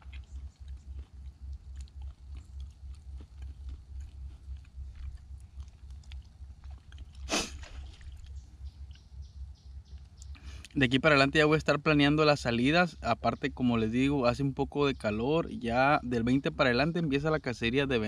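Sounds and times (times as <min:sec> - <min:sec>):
man chewing: 0:00.0 - 0:09.1
pulsing low rumble: 0:00.0 - 0:18.0.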